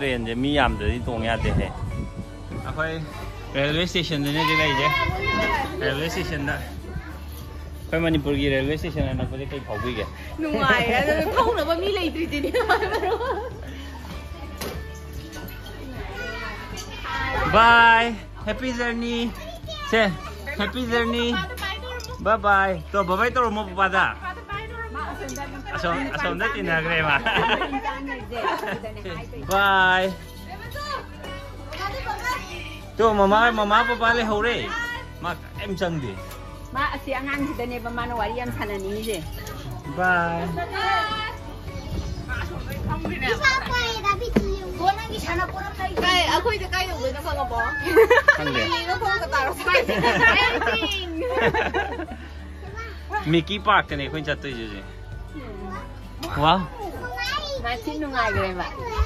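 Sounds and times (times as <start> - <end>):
children chattering: 2.3 - 8.2, 9.4 - 23.0, 30.0 - 35.4, 37.0 - 59.0.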